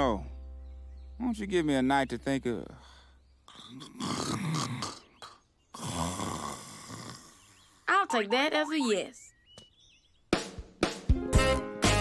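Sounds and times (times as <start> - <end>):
man feigned snoring: 3.5 - 7.6.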